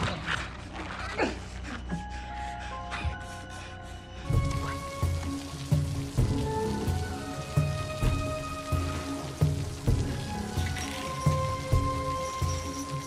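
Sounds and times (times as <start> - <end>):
film score held tones: 0.0 - 13.0
rain falling: 4.2 - 13.0.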